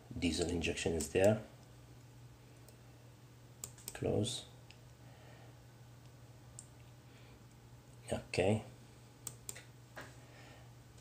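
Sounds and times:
low electrical hum: 0.0s - 11.0s
computer mouse click: 3.6s - 4.0s, 9.2s - 9.7s.

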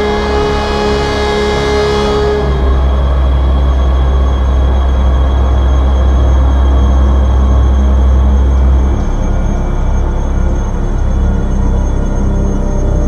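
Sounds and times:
deep bass drone: 0.0s - 13.0s
rumbling noise texture: 0.0s - 13.0s.

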